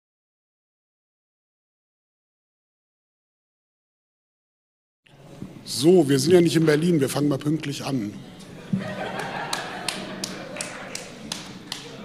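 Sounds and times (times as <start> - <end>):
murmur of voices: 5.2 - 12.0.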